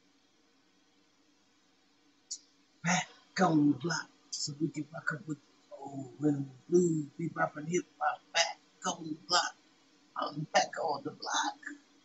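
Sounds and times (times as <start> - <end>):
person speaking: 2.8 - 9.5, 10.2 - 11.8.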